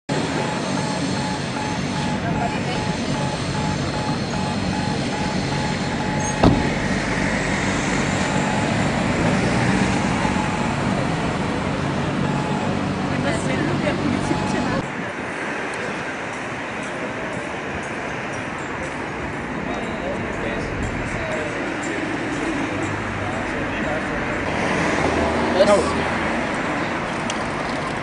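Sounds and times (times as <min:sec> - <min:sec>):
cars driving past: 0:00.1 - 0:28.0
faint pulsing beep: 0:00.4 - 0:06.4, 0:10.2 - 0:10.8, 0:12.2 - 0:12.8
sharp thump: 0:06.4 - 0:06.9.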